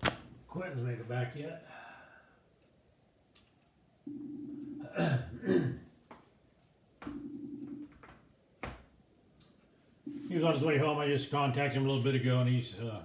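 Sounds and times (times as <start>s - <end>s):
call ringing tone: 4.0s - 5.4s, 7.0s - 8.0s, 10.1s - 11.0s
person coughing: 4.8s - 5.9s.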